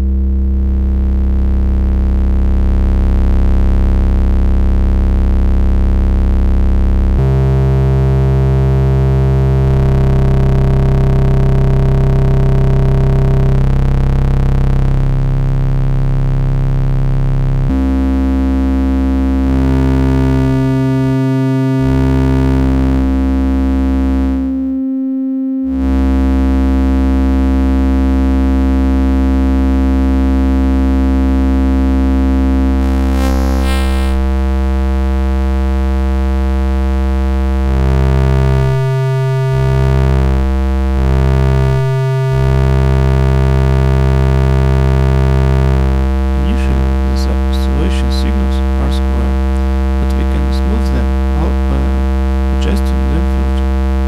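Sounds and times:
low buzzy synthesizer drone: 0:00.0 - 0:28.3, 0:29.5 - 0:54.0.

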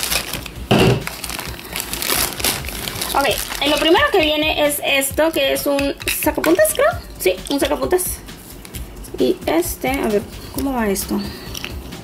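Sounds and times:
plastic bag crinkling: 0:00.0 - 0:06.8.

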